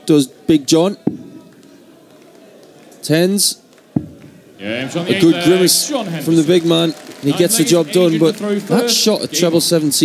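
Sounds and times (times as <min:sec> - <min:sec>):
faint arena background: 0:00.0 - 0:10.0.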